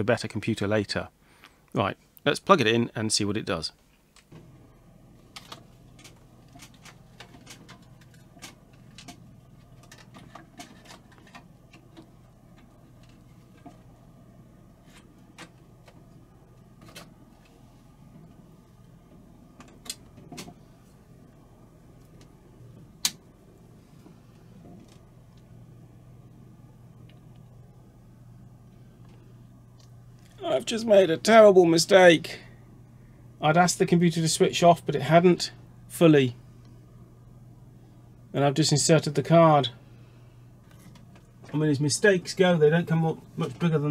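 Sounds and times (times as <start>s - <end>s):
computer fan humming: 0.0s - 43.9s
cables being handled: 3.9s - 30.5s, 40.6s - 43.9s.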